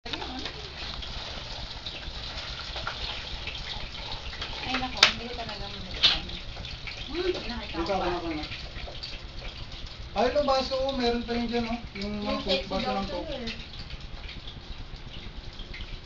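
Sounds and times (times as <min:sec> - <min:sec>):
people talking: 0:00.1 - 0:00.8, 0:04.6 - 0:06.4, 0:07.1 - 0:08.5, 0:10.2 - 0:13.6
background hiss: 0:05.6 - 0:16.0.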